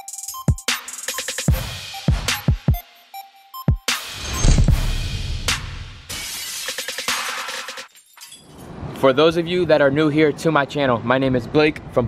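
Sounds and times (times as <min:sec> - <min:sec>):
intro music: 0:00.0 - 0:06.4
glass shattering: 0:06.1 - 0:08.7.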